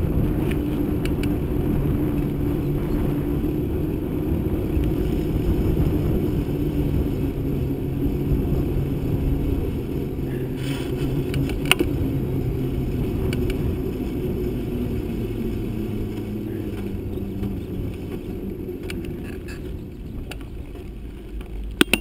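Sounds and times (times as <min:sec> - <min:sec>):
bicycle tyres humming on asphalt: 0:00.0 - 0:22.0
wind rumble on microphone: 0:00.0 - 0:22.0
sharp click: 0:21.8 - 0:22.0.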